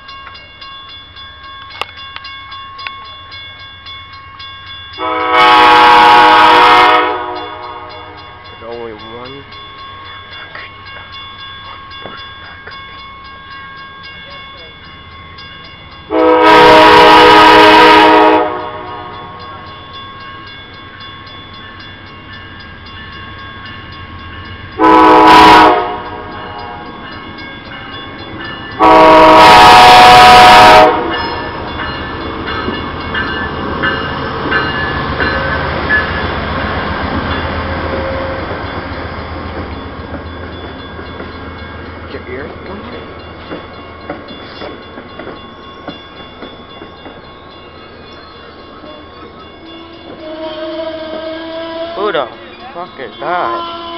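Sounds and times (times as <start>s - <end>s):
railroad crossing bell ringing: 0.0s - 53.9s
train wheels rumbling and clacking: 0.0s - 53.9s
train horn: 5.0s - 8.3s, 16.1s - 19.5s, 24.8s - 26.9s, 28.8s - 31.6s, 49.6s - 52.3s, 53.4s - 53.9s.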